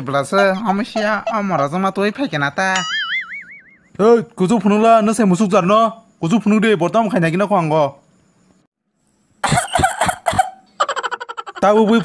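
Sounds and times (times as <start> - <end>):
woman coughing: 9.4 - 10.6.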